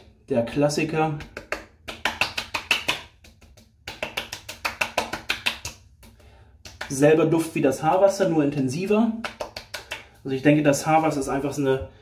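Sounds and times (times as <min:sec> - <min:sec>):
hands slapping skin: 0:01.2 - 0:07.1, 0:09.2 - 0:10.3.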